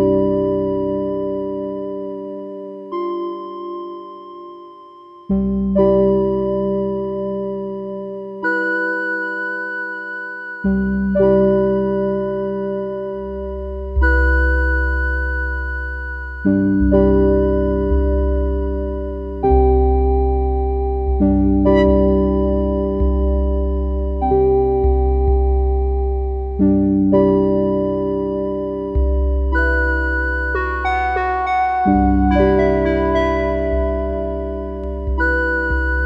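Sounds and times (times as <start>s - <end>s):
slow electric piano chords: 0.0s - 4.5s, 5.3s - 9.8s, 10.6s - 36.0s.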